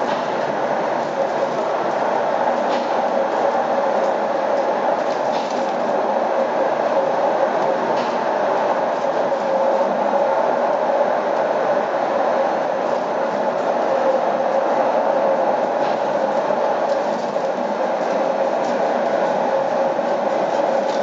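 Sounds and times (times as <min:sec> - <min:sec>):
lift car running hum: 0:00.0 - 0:21.0.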